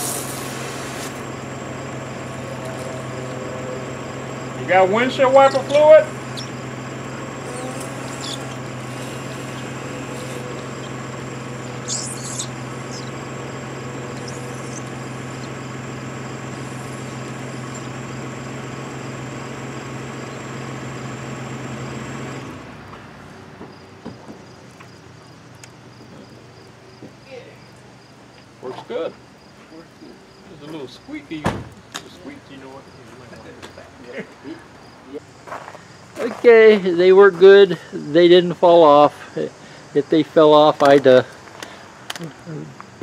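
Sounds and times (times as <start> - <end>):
wiper blades squeaking: 0.0 - 22.9
car engine humming: 0.0 - 43.0.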